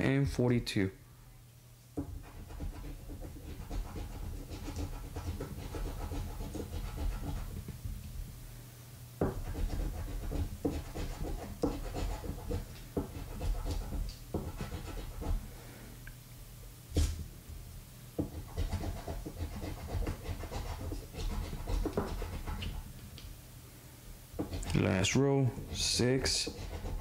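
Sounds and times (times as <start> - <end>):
coin scraping scratch card: 2.2 - 7.6, 9.4 - 12.6, 13.2 - 15.4, 18.4 - 22.8, 24.4 - 24.8, 25.6 - 27.0.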